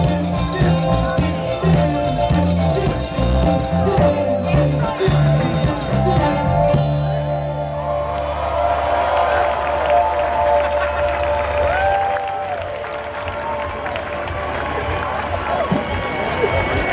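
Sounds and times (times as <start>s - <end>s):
crowd cheering: 0.0s - 16.9s.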